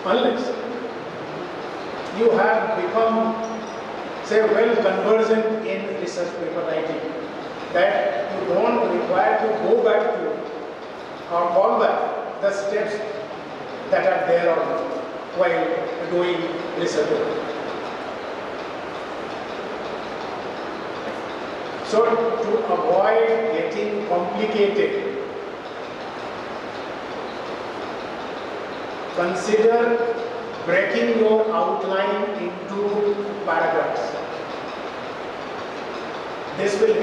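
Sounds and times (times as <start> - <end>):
room or microphone hiss: 0.0 - 37.0.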